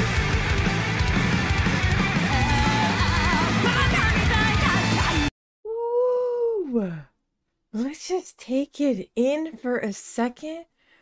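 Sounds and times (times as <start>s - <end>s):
heavy rock music with electric guitar: 0.0s - 5.3s.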